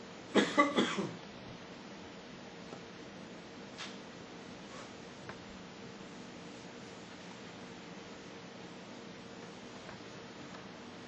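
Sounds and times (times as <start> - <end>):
person coughing: 0.3 - 1.2.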